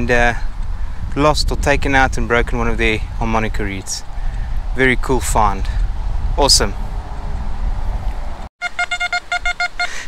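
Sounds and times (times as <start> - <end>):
metal detector short beeps: 8.6 - 10.0.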